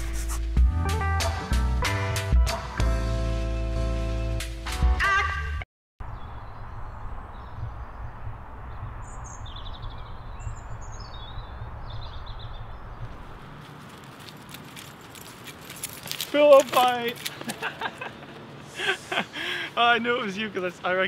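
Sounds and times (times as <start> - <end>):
steady low rumble: 6.0 - 13.6
small birds chirping: 6.0 - 14.3, 18.4 - 21.0.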